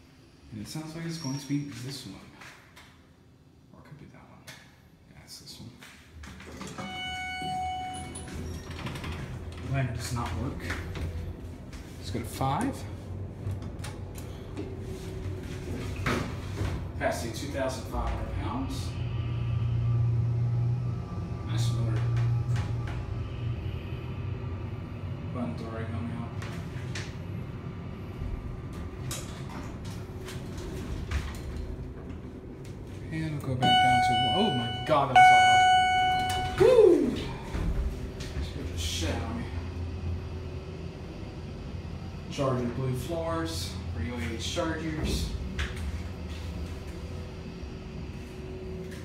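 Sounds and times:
elevator low rumble: 6.1s - 49.0s
elevator pump motor humming: 33.6s - 38.4s.

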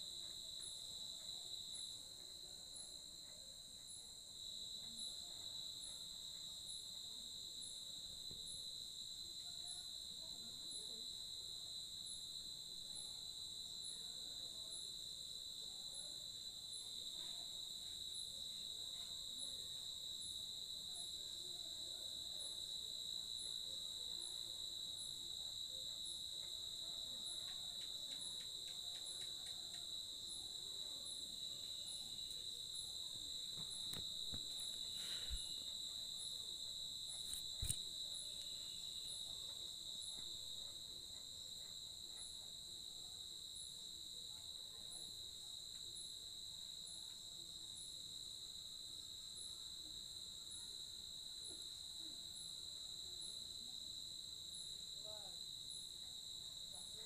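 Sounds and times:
faint ticking insect call: 0.0s - 57.0s
crickets trilling: 0.1s - 57.0s.

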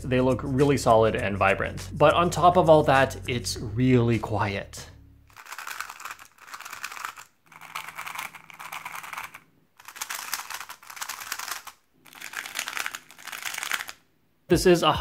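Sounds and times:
speed cube plastic clicks: 5.4s - 14.0s.

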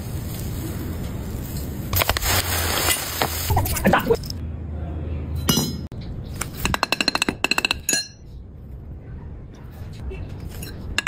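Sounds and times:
molten metal hissing: 0.0s - 3.8s.

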